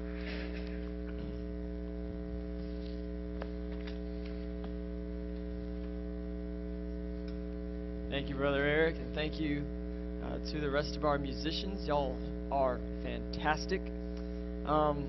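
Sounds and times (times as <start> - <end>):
electrical mains hum: 0.0 - 15.0.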